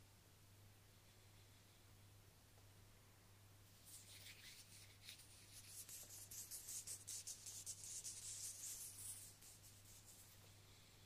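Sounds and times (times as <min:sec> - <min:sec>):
hands rubbing and brushing: 0:03.8 - 0:10.4.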